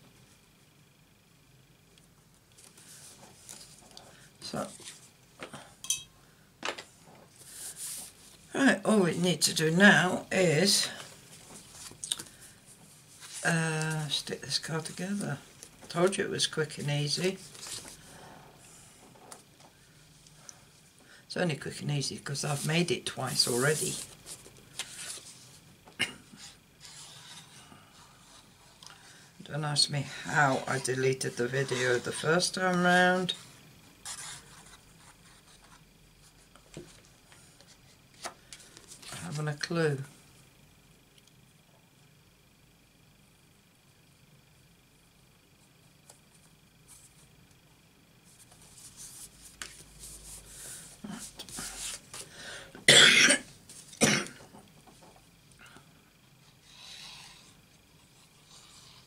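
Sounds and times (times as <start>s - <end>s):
paper rustling: 23.3s - 25.6s
person coughing: 26.0s - 26.4s, 52.9s - 54.4s.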